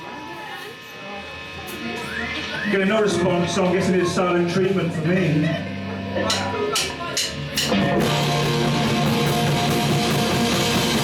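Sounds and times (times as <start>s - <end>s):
faint voices: 0.0s - 7.6s
guitar amplifier hum and buzz: 0.0s - 11.0s.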